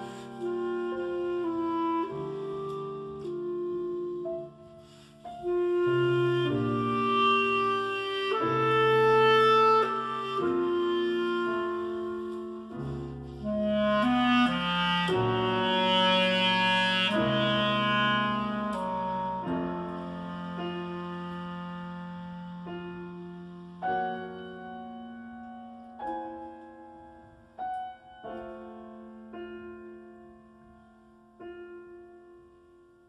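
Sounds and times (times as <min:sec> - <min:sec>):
clarinet playing sustained notes: 0:00.0 - 0:32.0
piano accompaniment: 0:00.0 - 0:33.0.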